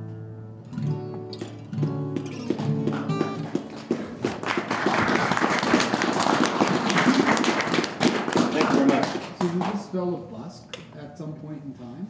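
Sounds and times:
acoustic guitar chord ringing: 0:00.0 - 0:03.4
audience applauding: 0:02.2 - 0:09.9.

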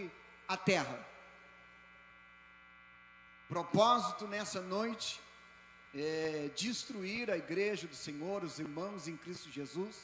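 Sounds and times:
faint mains hum: 0:00.0 - 0:10.0.

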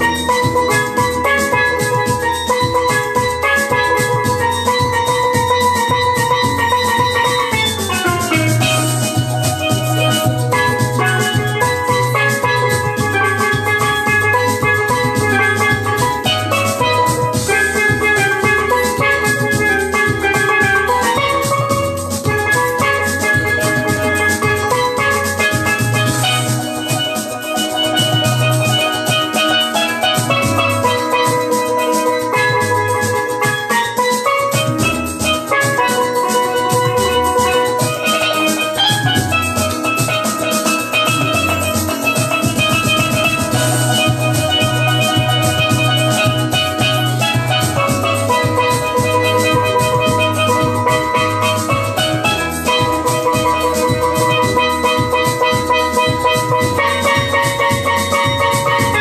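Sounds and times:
bass and drum accompaniment: 0:00.0 - 0:59.0
steel pan melody: 0:00.0 - 0:59.0.

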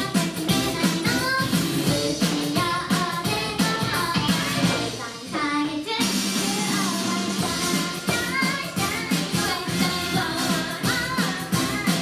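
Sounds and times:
backing track with dance beat: 0:00.0 - 0:12.0
girls singing pop song: 0:00.0 - 0:12.0.

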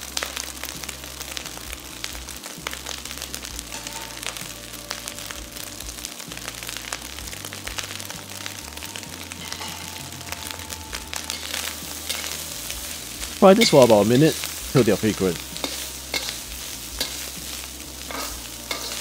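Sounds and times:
background music: 0:00.0 - 0:19.0
meat and onion sizzling in a wok: 0:00.0 - 0:19.0.

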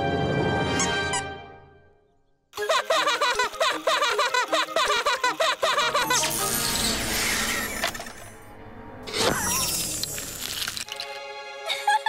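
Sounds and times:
background music: 0:00.0 - 0:09.4, 0:10.1 - 0:12.0.

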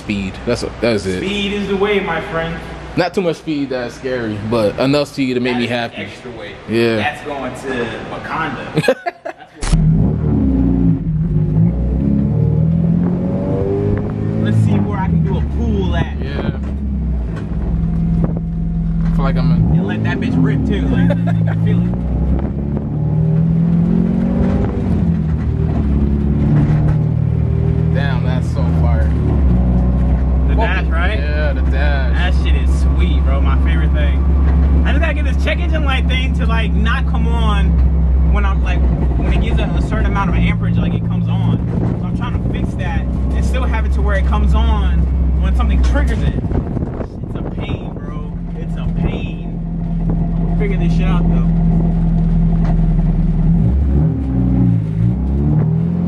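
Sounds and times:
car engine accelerating: 0:09.6 - 0:56.0.

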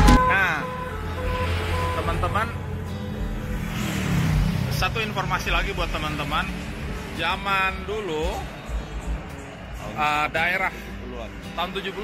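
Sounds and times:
background music: 0:00.0 - 0:12.0
cars and motorbikes passing: 0:00.0 - 0:12.0.

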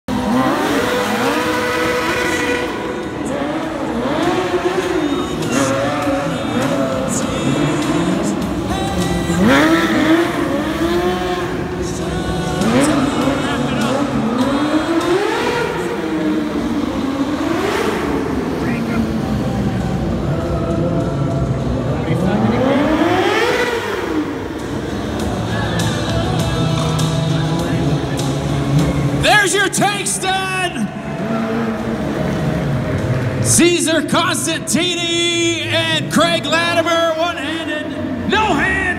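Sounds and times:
motorcycle engines revving: 0:00.0 - 0:38.9.

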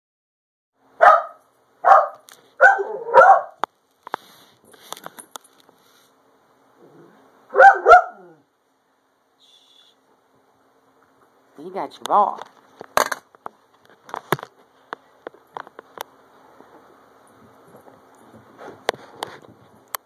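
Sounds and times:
dog barking: 0:01.0 - 0:03.6, 0:07.5 - 0:08.4.

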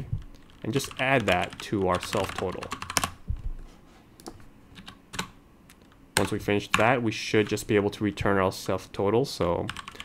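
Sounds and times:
computer keyboard keystrokes: 0:00.0 - 0:03.2, 0:04.2 - 0:07.6, 0:09.7 - 0:10.0.

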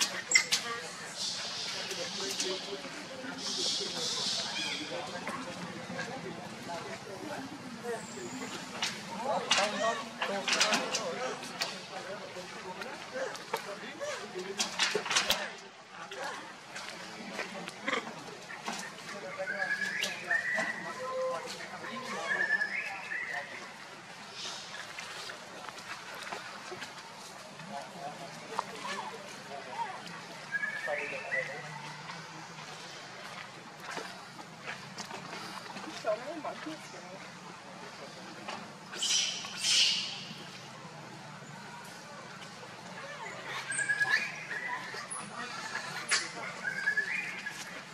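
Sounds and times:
monkey calling: 0:00.0 - 0:06.1, 0:30.5 - 0:32.0, 0:38.9 - 0:40.4, 0:43.0 - 0:47.7.

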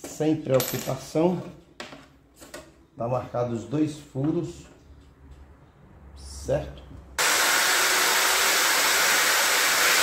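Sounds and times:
electric drill boring through board: 0:07.2 - 0:10.0.

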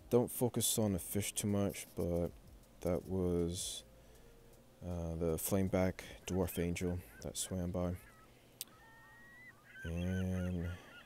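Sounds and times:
man speaking nasally: 0:00.1 - 0:03.8, 0:04.8 - 0:08.1, 0:09.8 - 0:10.9.

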